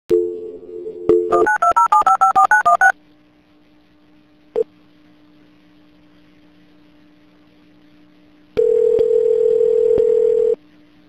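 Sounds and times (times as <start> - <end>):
faint steady line hum: 0.1 - 11.0
dial tone: 8.6 - 10.6.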